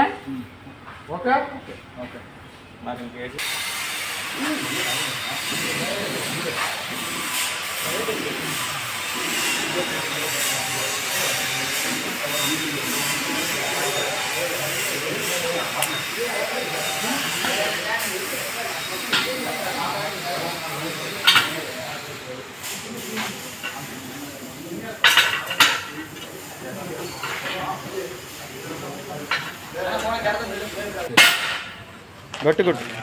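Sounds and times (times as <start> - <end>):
voices murmuring: 4.2 - 33.0.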